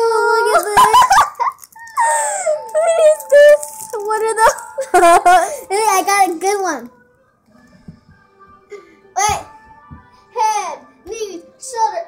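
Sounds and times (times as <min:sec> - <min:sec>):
girls squealing and giggling: 0:00.6 - 0:02.6.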